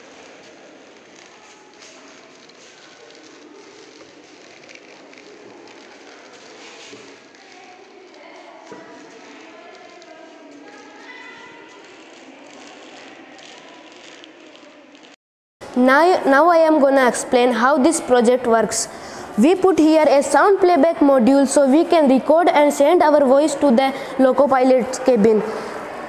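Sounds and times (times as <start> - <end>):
faint voices: 0.0 - 15.2
room noise: 0.0 - 26.0.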